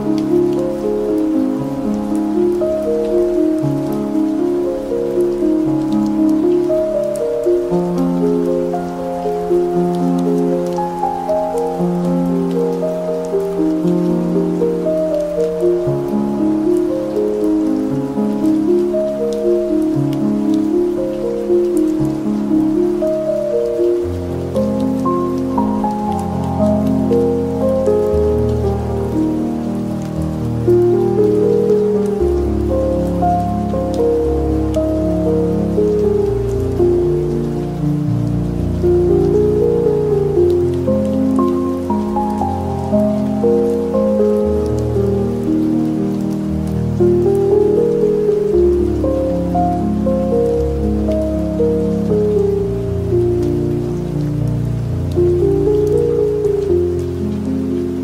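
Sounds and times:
falling rain: 0:00.0 - 0:58.0
slow ambient piano music: 0:00.0 - 0:58.0.

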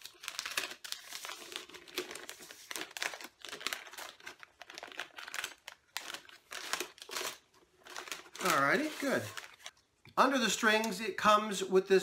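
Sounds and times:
paper strip crinkling: 0:00.0 - 0:09.8.

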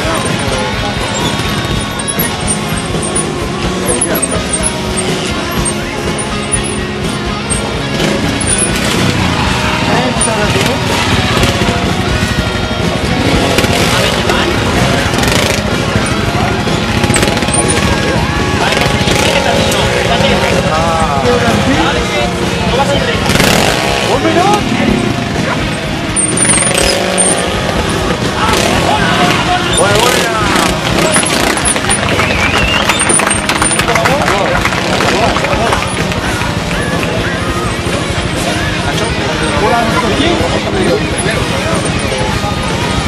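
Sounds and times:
motorcycle engine revving: 0:00.0 - 0:43.0
spectators' voices: 0:00.0 - 0:43.0.

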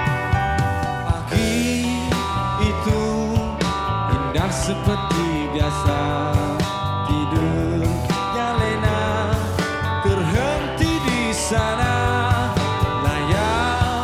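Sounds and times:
live rock band playing: 0:00.0 - 0:14.0
man singing: 0:00.8 - 0:14.0.

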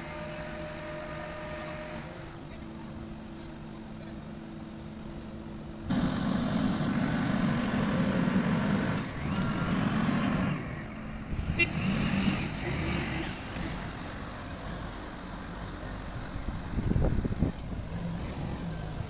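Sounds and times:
heavy diesel engine under load: 0:00.0 - 0:19.0.

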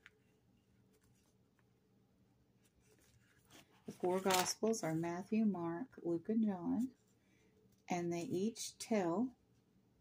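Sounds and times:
thin pages rustling: 0:00.0 - 0:01.7, 0:02.6 - 0:05.0.

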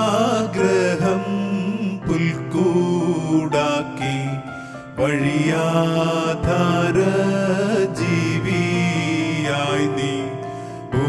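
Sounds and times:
keyboard accompaniment: 0:00.0 - 0:11.0
person singing long held notes: 0:00.0 - 0:11.0.

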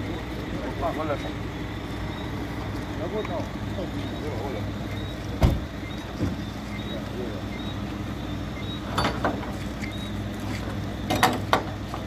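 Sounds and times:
truck engine idling: 0:00.0 - 0:12.0
faint high beeps: 0:03.2 - 0:09.0.

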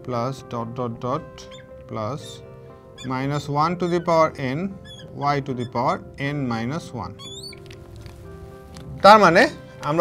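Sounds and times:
soft background music: 0:00.0 - 0:10.0
marker squeaking on glass: 0:01.3 - 0:08.1.

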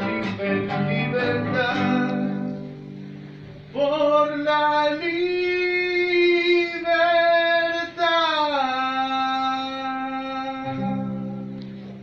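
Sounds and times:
guitar chord: 0:00.0 - 0:03.6.

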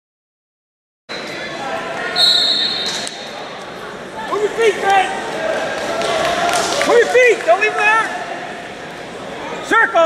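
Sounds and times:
referee's whistle blast: 0:02.2 - 0:03.1.

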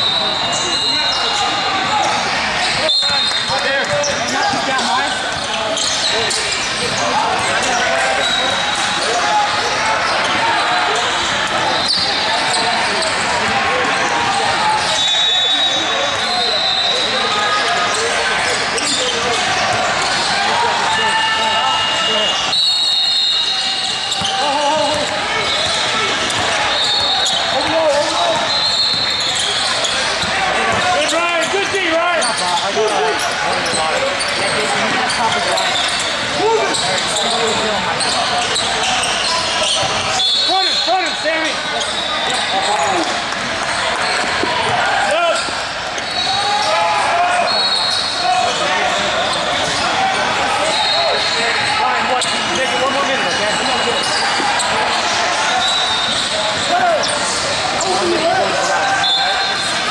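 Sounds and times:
shoe squeaks: 0:00.0 - 0:13.2, 0:21.0 - 0:43.0, 0:45.2 - 0:59.9
crowd chatter: 0:00.0 - 0:59.9.

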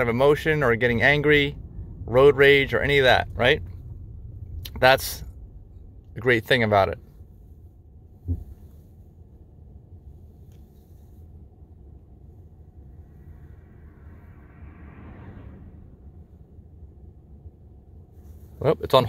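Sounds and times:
car cabin rumble: 0:00.0 - 0:14.3
short low thump: 0:08.2 - 0:08.6.

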